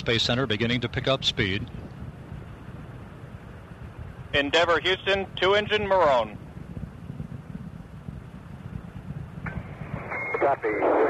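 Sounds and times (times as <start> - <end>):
low rough rumble with crackle: 0.4 - 11.0
radio channel hiss: 4.4 - 6.2, 9.5 - 11.0
radio call: 4.4 - 6.4, 9.5 - 11.0.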